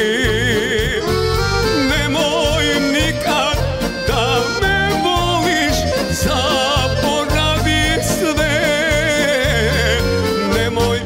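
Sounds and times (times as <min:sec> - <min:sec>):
live band playing: 0:00.0 - 0:11.0
man singing into a microphone: 0:00.0 - 0:11.0.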